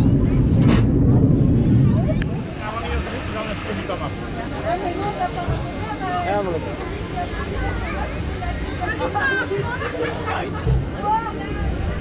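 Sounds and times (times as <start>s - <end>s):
low steady rumble: 0.0s - 12.0s
people talking: 0.0s - 12.0s.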